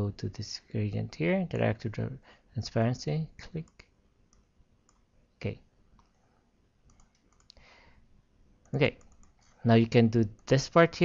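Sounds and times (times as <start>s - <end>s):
faint computer mouse clicks: 3.7s - 5.1s, 5.9s - 6.2s, 6.9s - 7.7s, 8.6s - 9.6s.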